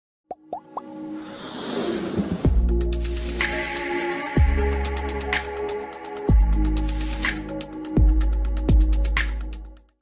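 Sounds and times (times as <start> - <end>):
electronic music build-up: 0.8 - 9.5.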